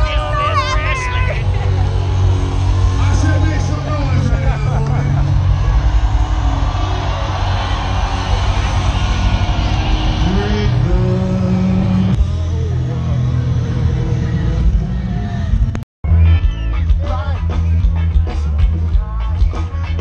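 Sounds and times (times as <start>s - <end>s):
heavy low rumble: 0.0s - 19.3s
crowd voices: 0.0s - 20.0s
muddy stage music: 0.0s - 20.0s
person singing: 10.1s - 15.4s.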